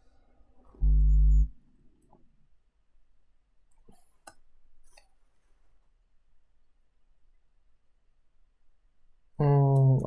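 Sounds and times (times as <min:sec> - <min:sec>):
low hum: 0:00.8 - 0:01.6.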